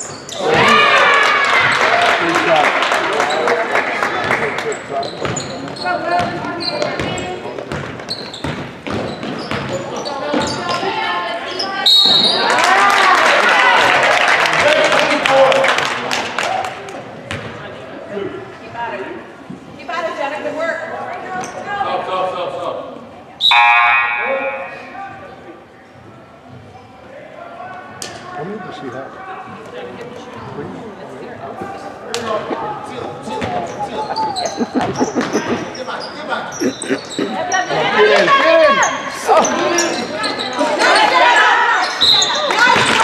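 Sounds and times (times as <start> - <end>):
spectators' voices: 15.9 - 43.0.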